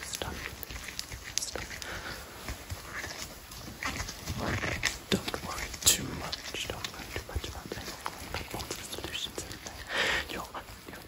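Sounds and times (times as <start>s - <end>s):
person whispering: 0.0s - 3.3s, 4.3s - 11.0s.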